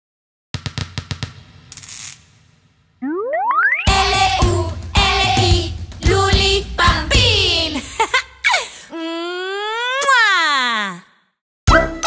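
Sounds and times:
drum-like taps: 0.6 - 1.8
loud children's music: 3.8 - 8.0, 11.7 - 12.0.

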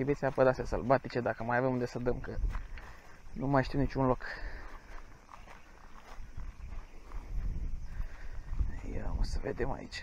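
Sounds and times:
footsteps: 0.0 - 9.5
tall grass rustling: 0.0 - 10.0
microphone handling rumble: 5.1 - 9.8.

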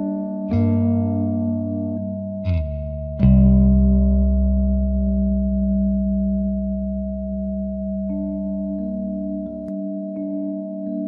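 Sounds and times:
steady meditation tone: 0.0 - 11.0.

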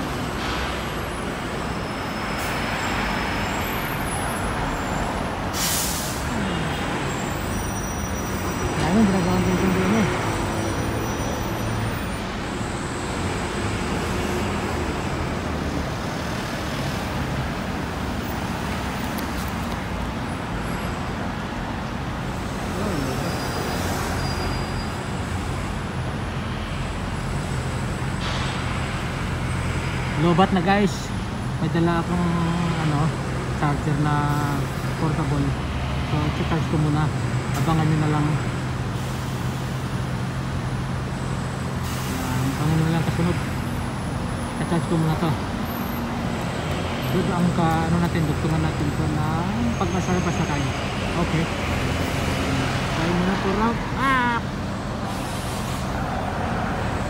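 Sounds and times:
bus engine: 0.0 - 57.0
road traffic roar: 0.0 - 57.0
air brakes hissing: 5.4 - 6.4, 41.7 - 42.6, 55.0 - 56.0.

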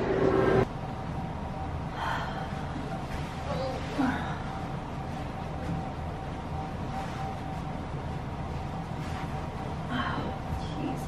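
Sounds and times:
low steady room hum: 0.0 - 11.0.

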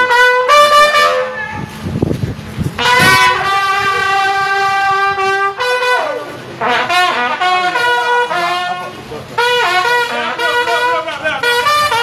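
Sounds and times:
brass band music: 0.0 - 1.8, 2.4 - 12.0
horn holding long note: 0.0 - 1.8, 2.8 - 12.0.

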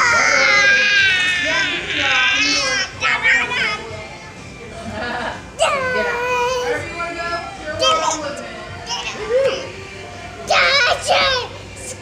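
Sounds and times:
toddler vocal sound: 0.0 - 3.9, 10.5 - 12.0.

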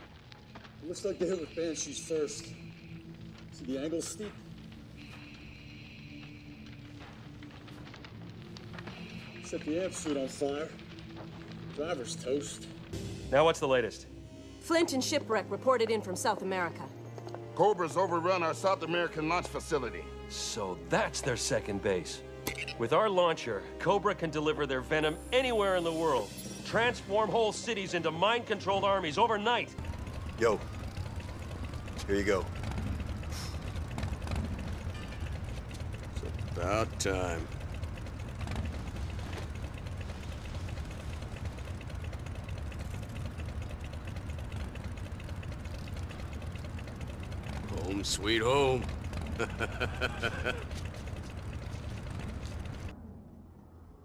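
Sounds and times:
fast fine ticking: 0.0 - 13.9, 25.2 - 52.9
low mechanical rumble: 0.0 - 54.0
low score drone: 0.0 - 54.0.

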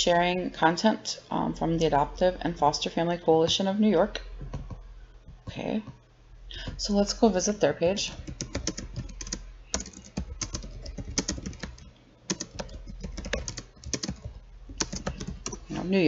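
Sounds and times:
typing on a computer keyboard: 8.2 - 15.7.

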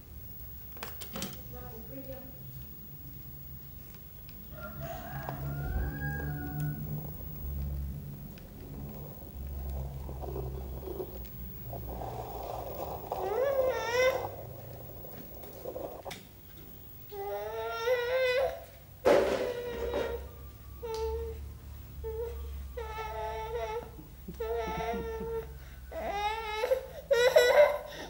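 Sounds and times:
toddler vocalising: 12.0 - 15.0, 22.0 - 28.0
toddler whining: 12.1 - 16.0, 17.1 - 18.8, 19.4 - 21.4, 22.0 - 28.0.

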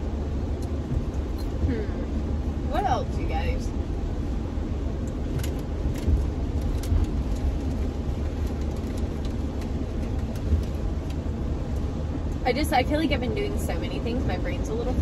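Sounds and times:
van engine and tyre rumble: 0.0 - 15.0.

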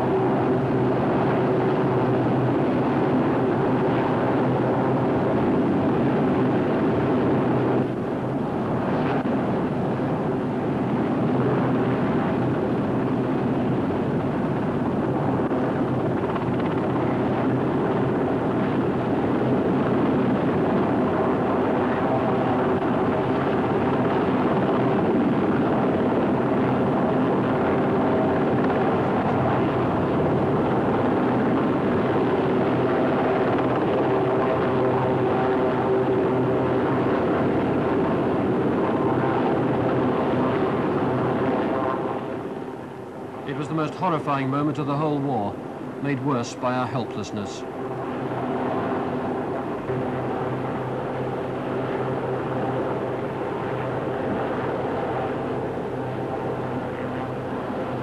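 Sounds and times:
helicopter rotor and engines: 0.0 - 58.0.

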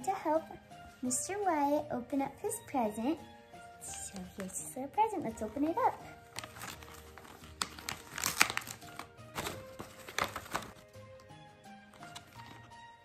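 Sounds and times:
background music: 0.0 - 13.0
wrapping paper tearing: 5.4 - 10.8.

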